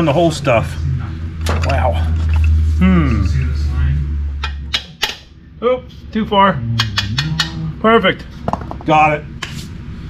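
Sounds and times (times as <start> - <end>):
steady low hum: 0.0 - 10.0
man muttering and straining: 1.8 - 3.6.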